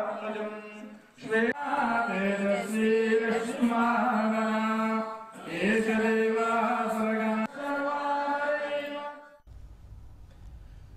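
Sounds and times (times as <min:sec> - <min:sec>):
voices chanting mantras: 0:00.0 - 0:09.5
faint low hum: 0:09.5 - 0:10.9.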